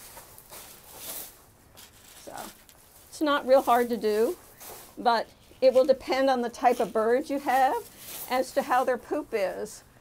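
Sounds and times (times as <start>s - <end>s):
scoop scraping in gravel: 0.0s - 8.6s
plastic bag rustling: 0.0s - 9.1s.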